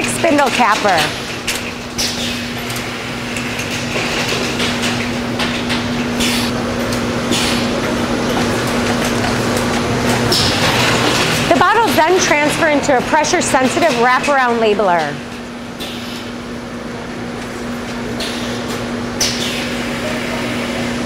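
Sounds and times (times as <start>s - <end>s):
machinery motor hum: 0.0s - 21.0s.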